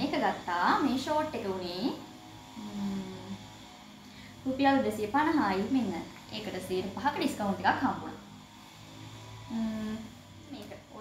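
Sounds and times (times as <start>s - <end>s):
person humming low note: 2.6s - 3.4s, 9.4s - 10.2s.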